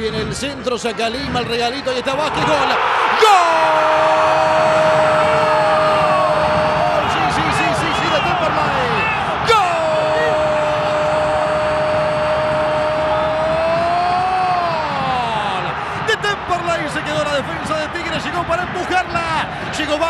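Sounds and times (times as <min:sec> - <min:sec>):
crowd noise: 0:00.0 - 0:20.0
commentator's drawn-out goal cry: 0:02.2 - 0:19.1.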